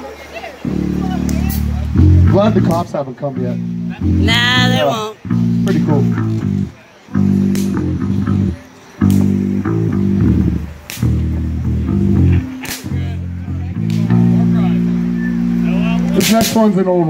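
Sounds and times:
distorted rock guitar and bass chords: 0.7s - 16.0s.

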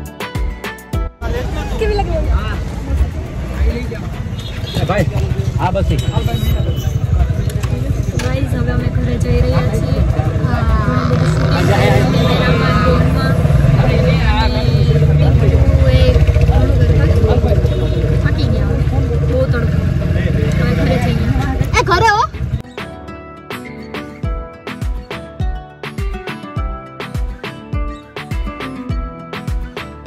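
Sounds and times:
women talking: 8.0s - 22.4s.

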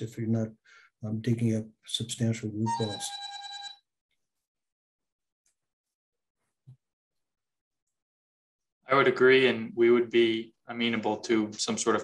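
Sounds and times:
electronic alert tone: 2.6s - 3.8s.

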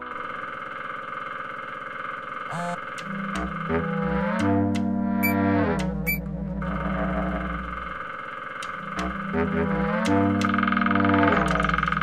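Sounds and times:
cartoon woodpecker drumming: 2.5s - 7.6s, 8.6s - 12.0s.

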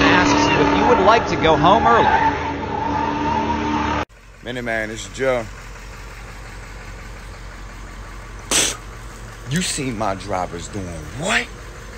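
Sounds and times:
engine idling: 4.1s - 11.9s
man spraying out a drink: 8.5s - 8.8s.

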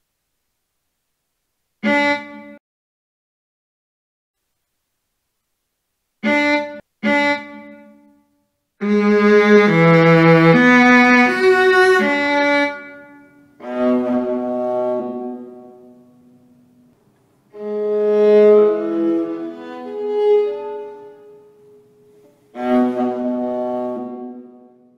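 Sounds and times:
bowed viola notes: 1.8s - 2.6s, 6.2s - 24.9s.

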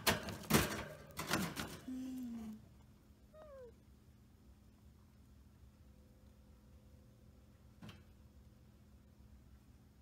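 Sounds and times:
rustling and rattling of wire cage: 0.0s - 2.4s.

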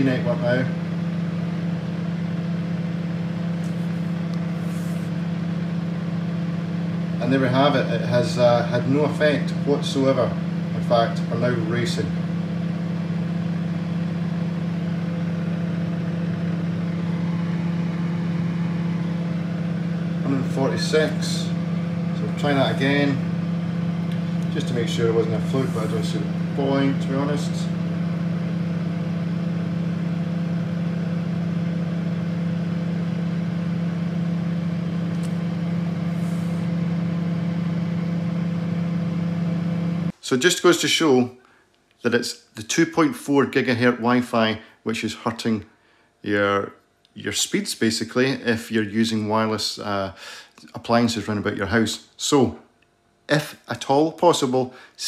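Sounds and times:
microwave oven humming: 0.0s - 41.7s.

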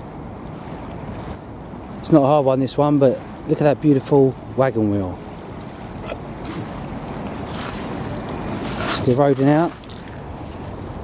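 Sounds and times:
wind noise on microphone: 5.4s - 11.0s.

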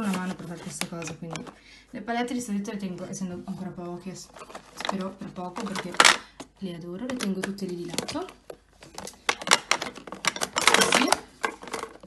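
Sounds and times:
plastic palettes clattering: 0.0s - 1.6s, 4.1s - 12.0s.

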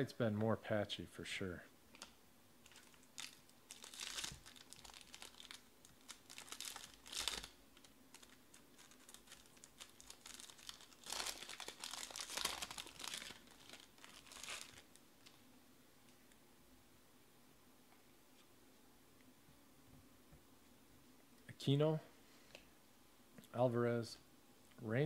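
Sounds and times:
cards rustling: 2.0s - 15.4s
foil wrapper crinkling and tearing: 2.6s - 15.4s.

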